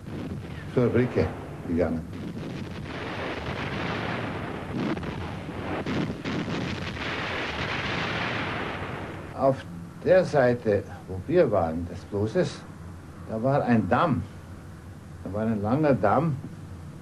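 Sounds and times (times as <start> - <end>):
artillery rushing noise: 0.0 - 9.4
sharp gunshots: 0.0 - 9.4.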